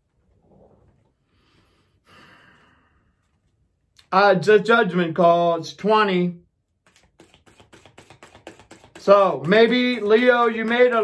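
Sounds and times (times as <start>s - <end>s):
soft breaths: 0.4s - 3.6s.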